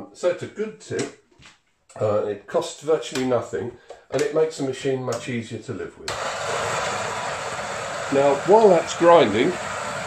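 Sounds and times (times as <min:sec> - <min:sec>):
coffee grinder grinding: 0:06.1 - 0:10.0.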